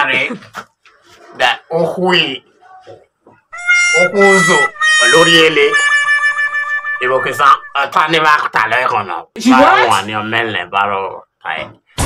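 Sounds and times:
high buzzy tone: 3.5 - 8.6.

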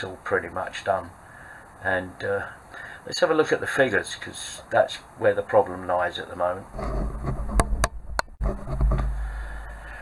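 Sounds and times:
sharp clicks and knocks: 6.8 - 9.7.

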